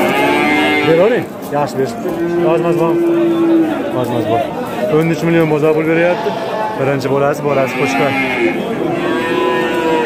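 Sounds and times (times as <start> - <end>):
farm animal calling: 0.0 - 1.2, 5.5 - 10.0.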